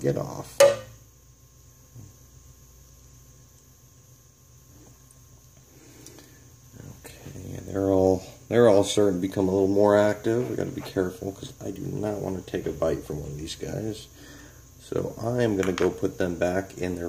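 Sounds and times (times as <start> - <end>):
man speaking: 0.0 - 0.6, 6.8 - 14.1, 14.8 - 17.0.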